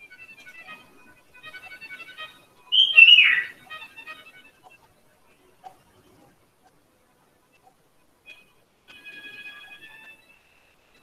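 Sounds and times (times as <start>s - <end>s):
light plinking background music: 0.0s - 11.0s
descending whistle-like call: 2.7s - 3.9s.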